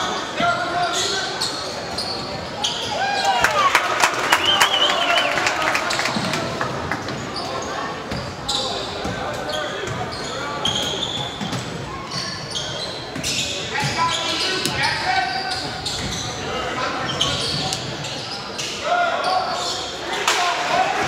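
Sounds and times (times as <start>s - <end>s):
sneakers squeaking: 0.0s - 3.5s, 7.0s - 20.3s.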